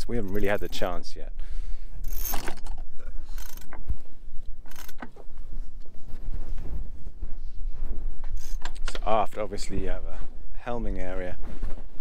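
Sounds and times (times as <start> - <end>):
steady low rumble: 0.0 - 12.0
winch ratchet clicking: 2.0 - 3.8, 4.6 - 5.1.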